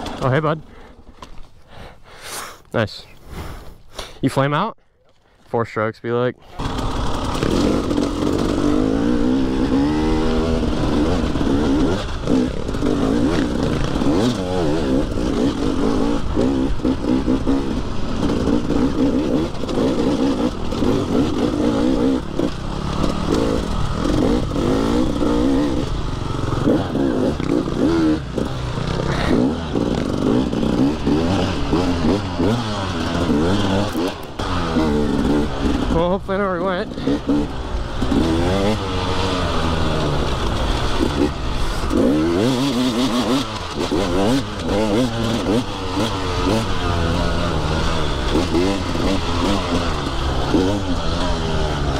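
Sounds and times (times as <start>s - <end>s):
dirt bike engine revving: 6.4s - 51.9s.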